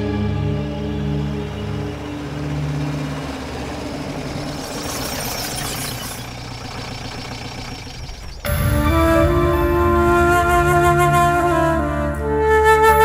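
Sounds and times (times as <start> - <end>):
car engine running low: 0.0 - 12.5.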